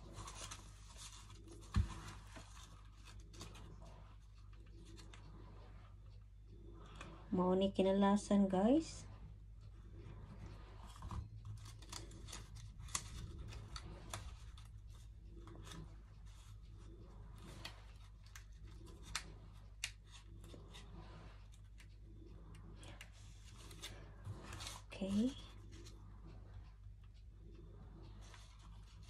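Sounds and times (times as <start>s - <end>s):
paper crinkling and rustling: 0.0s - 5.4s, 10.8s - 22.0s
steady low hum: 0.0s - 29.0s.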